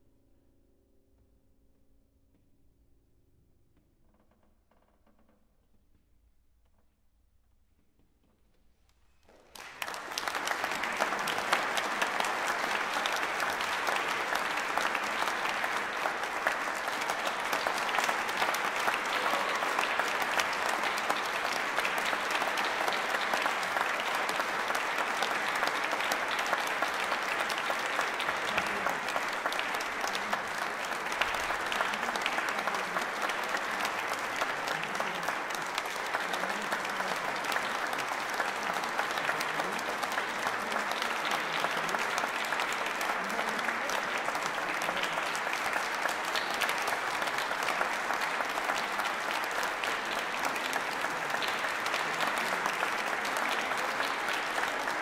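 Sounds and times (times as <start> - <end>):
audience applause: 9.3 - 55.0.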